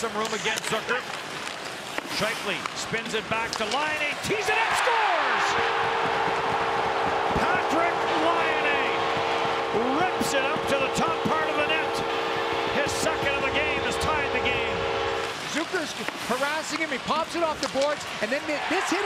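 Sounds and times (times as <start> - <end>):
crowd cheering: 4.1 - 15.8, 18.2 - 19.0
arena goal horn blaring: 4.4 - 15.6.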